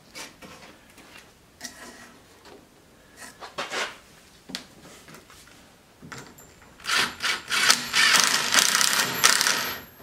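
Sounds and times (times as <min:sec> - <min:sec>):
cordless drill driving screw into wood: 0:06.8 - 0:09.8.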